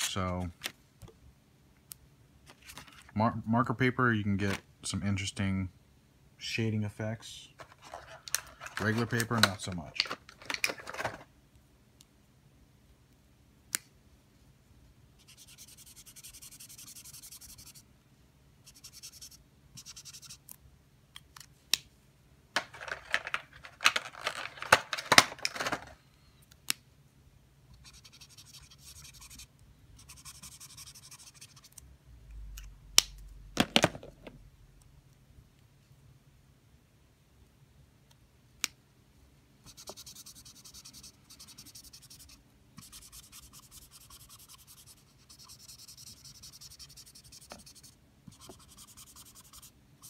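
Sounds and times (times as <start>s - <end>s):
rustling of markers: 2.4s - 3.2s, 7.6s - 11.3s, 22.6s - 26.0s, 39.7s - 49.7s
marker scratching on paper: 15.2s - 17.8s, 18.6s - 20.4s, 27.8s - 31.8s, 39.7s - 49.7s.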